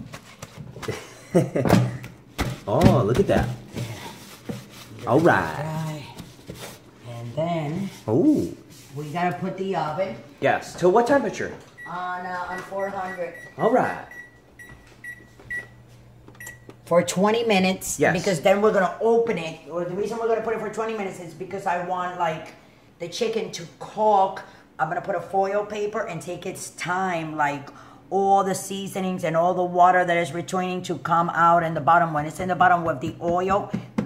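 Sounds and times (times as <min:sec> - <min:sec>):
person laughing loudly: 0:00.8 - 0:02.1
oven keypad beeping: 0:11.8 - 0:15.8, 0:16.4 - 0:16.7.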